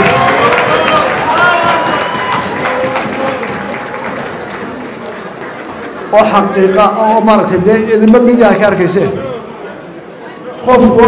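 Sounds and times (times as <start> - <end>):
audience applause: 0.0 - 6.1.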